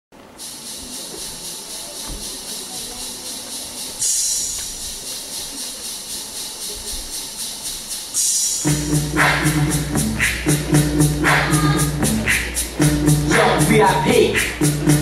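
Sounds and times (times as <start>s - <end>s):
rhythmic hiss of dance track: 0.2s - 15.0s.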